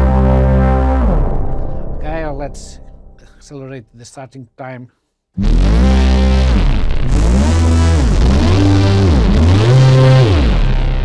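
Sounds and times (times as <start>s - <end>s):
low synthesizer note falling glide: 0.0s - 3.3s.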